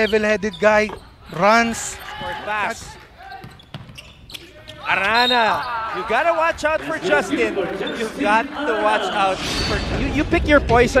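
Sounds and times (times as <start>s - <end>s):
faint court noise: 0.0s - 8.2s
basketball bouncing on court: 2.0s - 5.3s.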